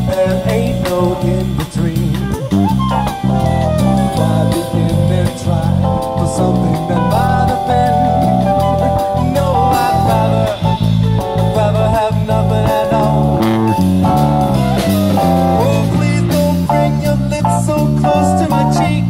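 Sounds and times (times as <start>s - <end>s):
man singing: 0.0s - 13.8s, 14.8s - 19.0s
drum kit and cymbals: 0.0s - 19.0s
electric bass guitar: 0.0s - 19.0s.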